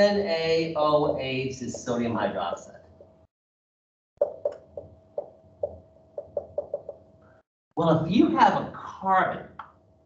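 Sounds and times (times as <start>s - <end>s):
marker tapping on whiteboard: 4.2s - 7.0s.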